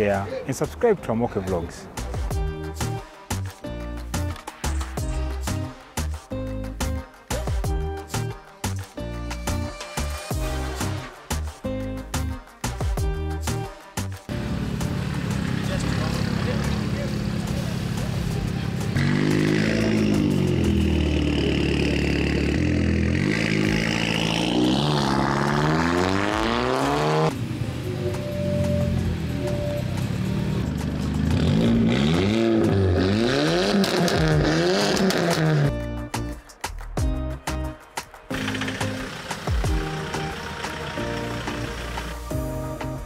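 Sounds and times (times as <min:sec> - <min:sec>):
background music: 0:00.0 - 0:43.0
car engine revving: 0:14.3 - 0:35.7, 0:38.3 - 0:42.3.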